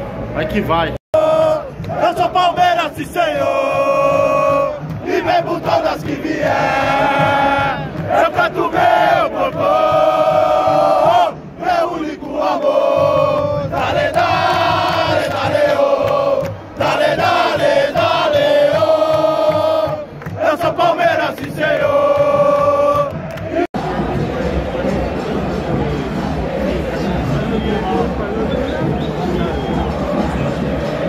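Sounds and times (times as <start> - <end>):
crowd chanting in unison: 1.1 - 31.0.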